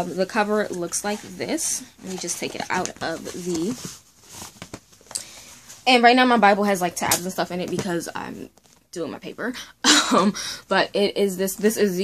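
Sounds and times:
soft rustling of book: 0:00.0 - 0:06.2, 0:07.6 - 0:08.9.

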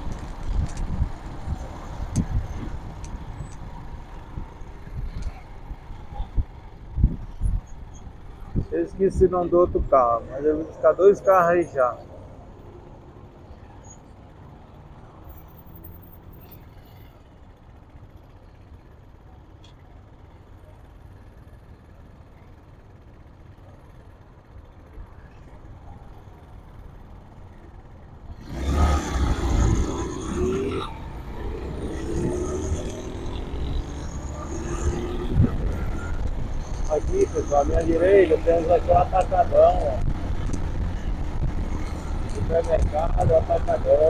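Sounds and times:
wind noise: 0:00.0 - 0:09.0, 0:34.8 - 0:38.0, 0:38.9 - 0:43.9
motorcycle engine: 0:27.1 - 0:44.0.

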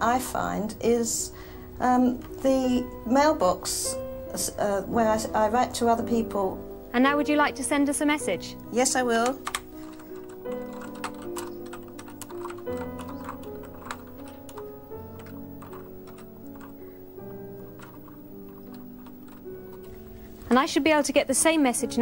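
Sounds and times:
slow held chords music: 0:00.0 - 0:20.6
keyboard keys clicking: 0:01.8 - 0:20.7.

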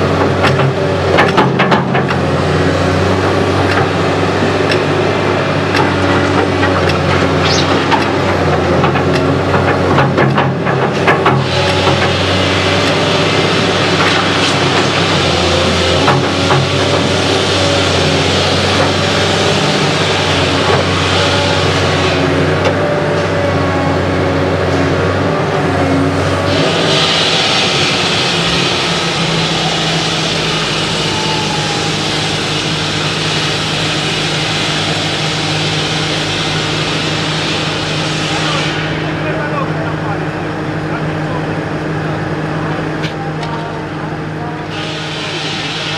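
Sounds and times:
excavator diesel engine running: 0:00.0 - 0:45.9.

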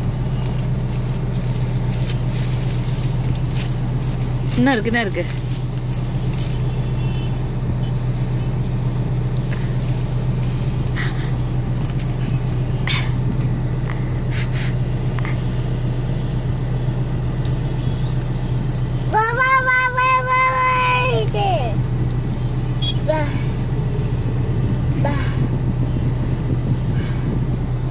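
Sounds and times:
low hum of car interior: 0:00.0 - 0:27.9.

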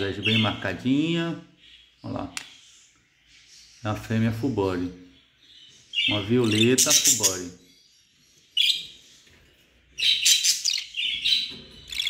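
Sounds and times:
budgerigars chirping: 0:00.0 - 0:12.0.

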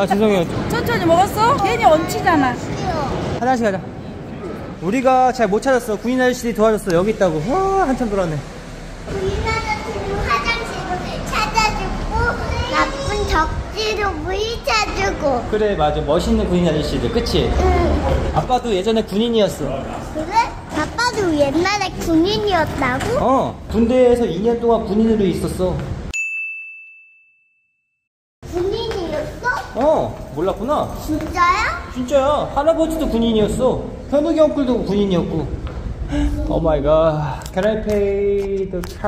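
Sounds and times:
young girl talking: 0:02.0 - 0:03.3, 0:09.1 - 0:15.5, 0:20.2 - 0:23.2, 0:28.5 - 0:29.8, 0:31.1 - 0:32.0
bell-like ding: 0:26.2 - 0:28.0.

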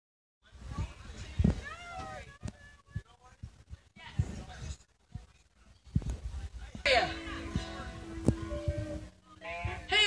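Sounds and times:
background chatter: 0:00.4 - 0:10.0.

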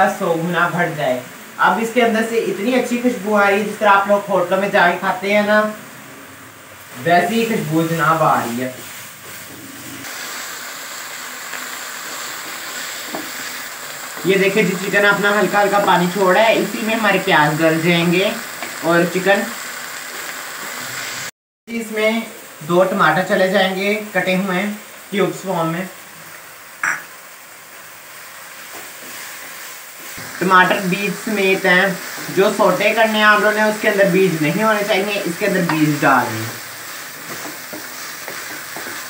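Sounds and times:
food sizzling in a wok: 0:00.0 - 0:39.0
spatula stirring in a wok: 0:08.8 - 0:14.3, 0:28.5 - 0:33.9, 0:34.9 - 0:39.0.

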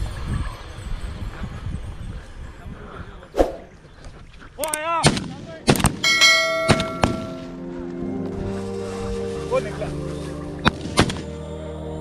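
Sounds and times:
bell-like ringing tone: 0:06.0 - 0:07.6.

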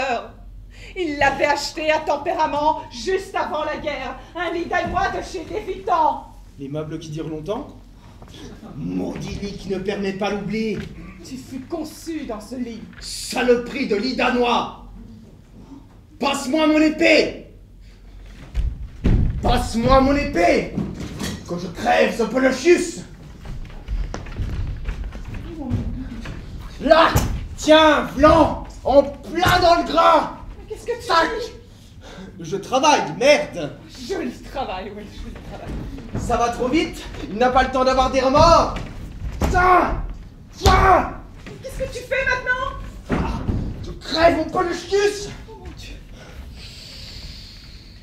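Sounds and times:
footsteps on stage: 0:18.1 - 0:21.5, 0:22.8 - 0:30.8, 0:35.0 - 0:46.6
long breathy exhale: 0:46.5 - 0:48.0.

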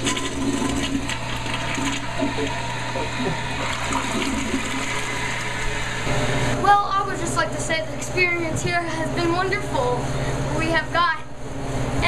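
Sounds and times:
toilet flushing: 0:00.0 - 0:06.6.

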